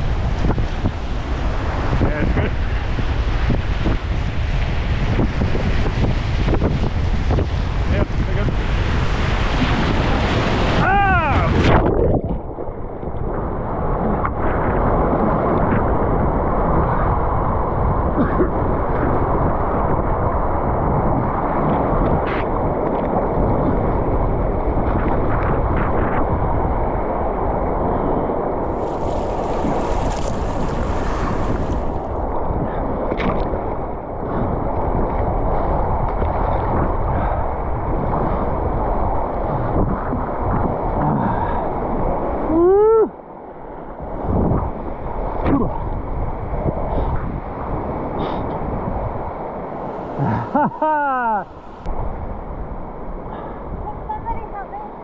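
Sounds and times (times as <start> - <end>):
water splashing: 28.6 - 32.3
whitewater rushing: 28.6 - 32.3, 49.5 - 51.9.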